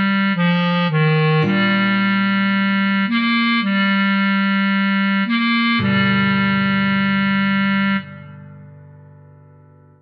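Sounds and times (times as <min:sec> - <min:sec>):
bass clarinet low note: 0:00.0 - 0:09.0
backing accompaniment chord: 0:00.0 - 0:10.0.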